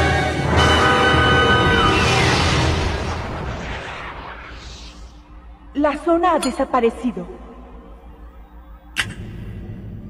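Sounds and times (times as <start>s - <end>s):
rumbling explosion-like blast: 1.9s - 5.6s.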